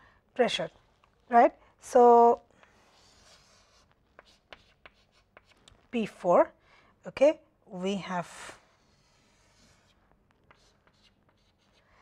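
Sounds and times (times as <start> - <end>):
chalk strokes on blackboard: 2.7 - 5.6, 8.6 - 12.0.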